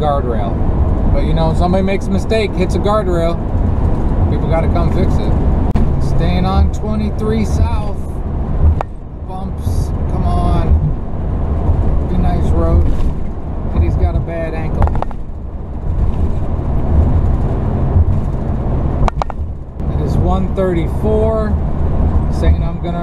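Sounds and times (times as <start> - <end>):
road and engine rumble: 0.0 - 23.0.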